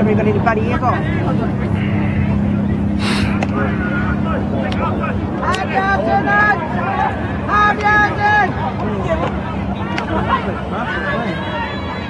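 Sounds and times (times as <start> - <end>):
faint voices: 0.0 - 12.0
low engine-like hum: 0.0 - 12.0
short hiss: 3.0 - 3.4.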